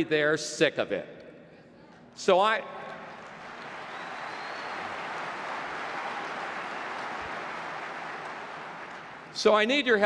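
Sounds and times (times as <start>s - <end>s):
large audience applauding: 3.0s - 9.7s.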